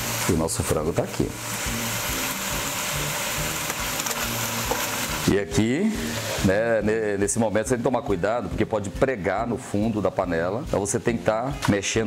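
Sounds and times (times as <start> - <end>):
chicken frying with sizzle: 0.0 - 7.2.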